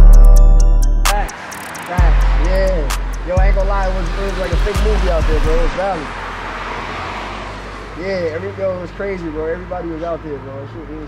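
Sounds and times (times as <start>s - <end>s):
traffic hiss: 1.3s - 6.3s.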